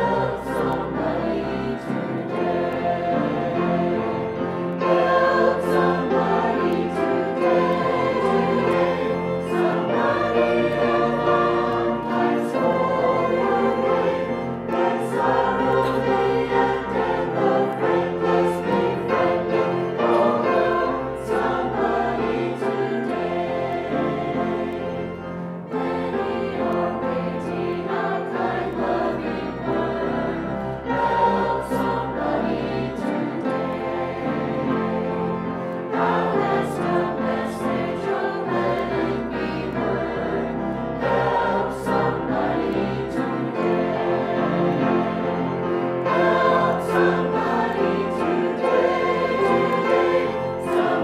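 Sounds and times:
choir singing a hymn: 0:00.0 - 0:51.0.

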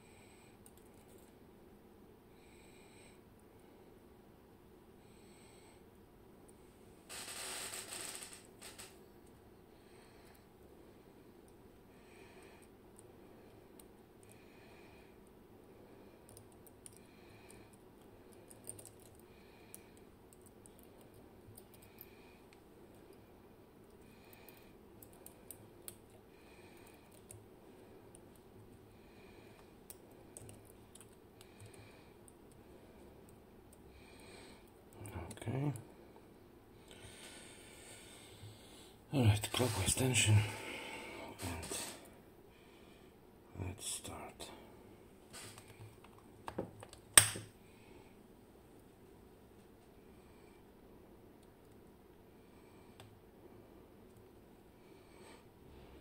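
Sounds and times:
soft breathing: 0:00.0 - 0:01.4, 0:02.2 - 0:04.1, 0:04.9 - 0:08.9, 0:09.6 - 0:46.0, 0:47.6 - 0:48.4, 0:49.8 - 0:50.8, 0:52.3 - 0:53.9, 0:54.6 - 0:56.0.

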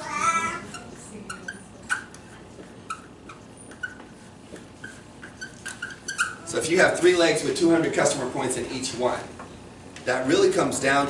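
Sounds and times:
marker squeaking on paper: 0:00.0 - 0:06.6.

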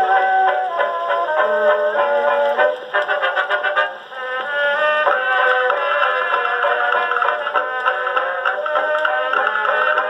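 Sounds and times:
dance band on old phonograph record: 0:00.0 - 0:10.0.

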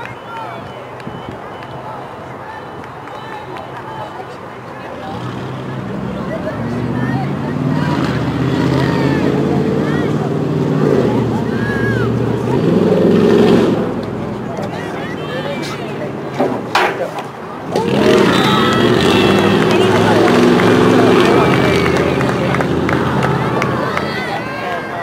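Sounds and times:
vehicle engine passing by: 0:04.8 - 0:16.3, 0:17.6 - 0:25.0.

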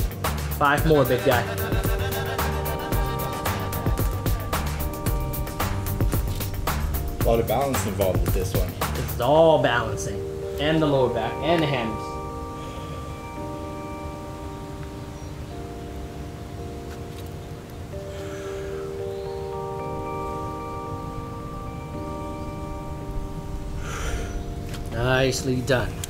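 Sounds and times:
chime-like music tones: 0:00.7 - 0:26.0.

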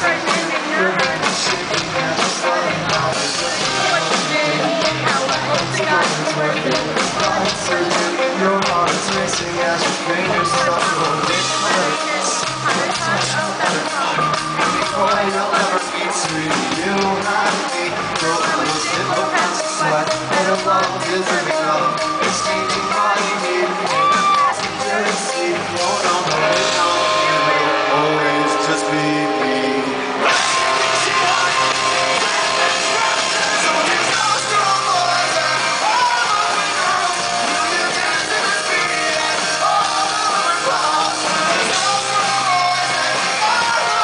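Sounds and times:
electric guitar: 0:00.0 - 0:44.0
person singing: 0:00.0 - 0:44.0
rock band playing: 0:00.0 - 0:44.0
drum hits: 0:23.9 - 0:44.0.

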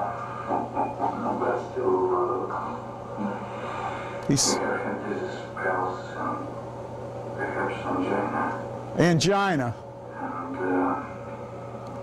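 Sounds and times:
muffled film dialogue over loudspeakers: 0:00.0 - 0:12.0
steady low hum: 0:00.0 - 0:12.0.

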